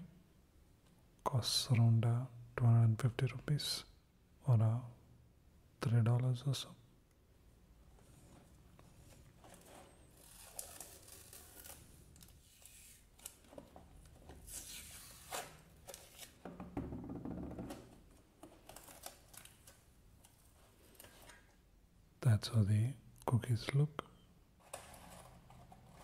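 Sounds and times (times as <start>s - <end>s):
plastic tape peeling: 9.2s - 16.4s, 18.4s - 21.6s.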